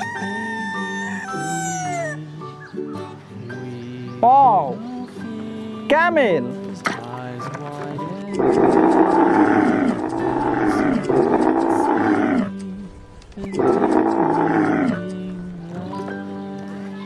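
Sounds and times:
background music: 0:00.0 - 0:17.0
camel bellowing: 0:08.4 - 0:12.6, 0:13.6 - 0:15.3.

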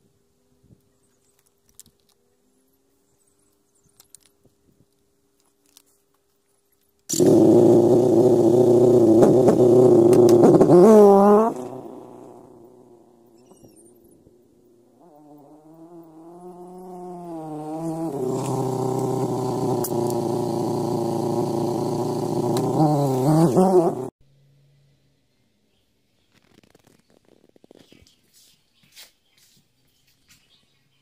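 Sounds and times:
motorcycle engine running: 0:07.1 - 0:24.1.

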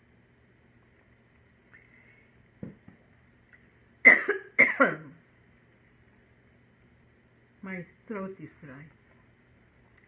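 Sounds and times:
woman coughing: 0:04.1 - 0:05.2.

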